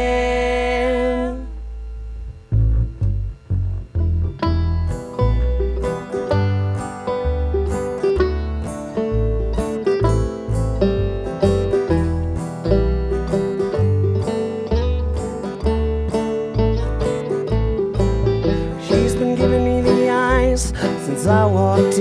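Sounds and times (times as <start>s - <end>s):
plucked upright bass: 0.0s - 22.0s
strummed acoustic guitar: 2.8s - 22.0s.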